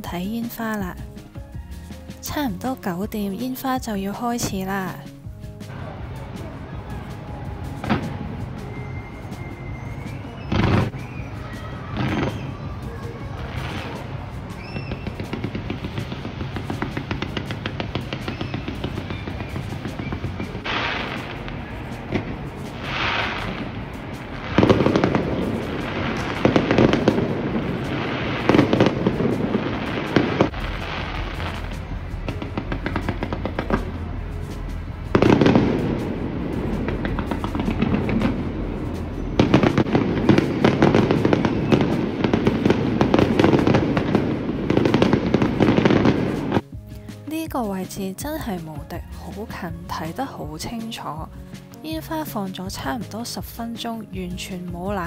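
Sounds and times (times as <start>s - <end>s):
fireworks crackling and popping: 2.0s - 53.7s.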